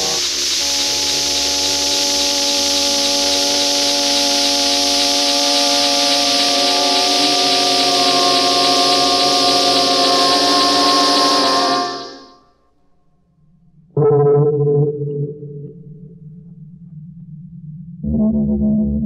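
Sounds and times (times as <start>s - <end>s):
held electronic tones: 0.0s - 12.4s
steady electronic noise hiss: 0.0s - 12.4s.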